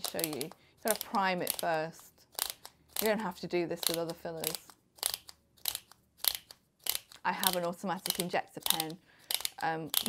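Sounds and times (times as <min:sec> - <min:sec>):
syringe clicker clicks: 0:00.0 - 0:03.2, 0:03.8 - 0:10.0.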